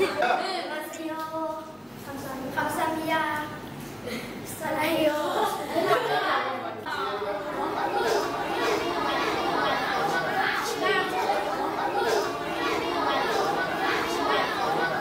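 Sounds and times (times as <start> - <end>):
children chattering: 4.1 - 15.0.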